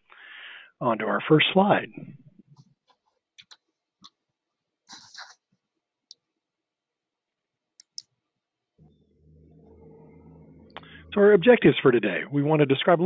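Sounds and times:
computer mouse clicks: 0:07.8 - 0:08.1.

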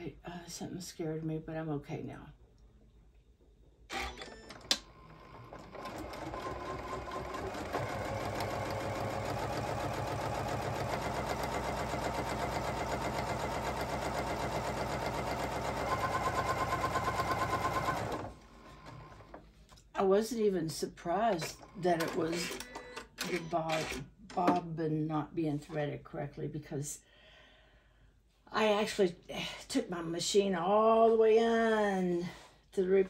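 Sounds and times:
sewing machine stitching: 0:03.9 - 0:19.4, 0:21.4 - 0:24.1.

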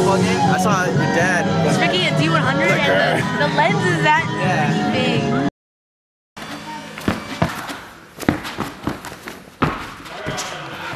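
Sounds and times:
bare feet thumping on gym mat: 0:07.0 - 0:10.9.

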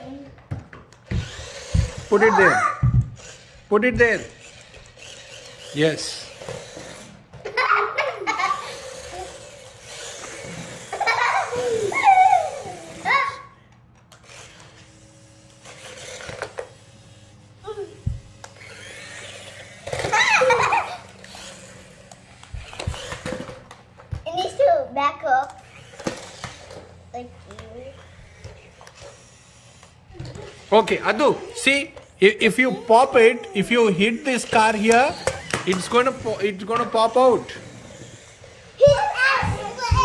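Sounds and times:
children talking and laughing: 0:06.8 - 0:13.6, 0:17.6 - 0:18.2, 0:19.1 - 0:21.9, 0:24.2 - 0:29.0, 0:30.0 - 0:40.0.

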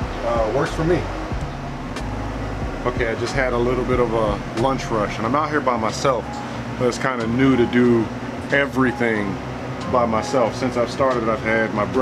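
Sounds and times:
generator humming: 0:00.0 - 0:12.0.

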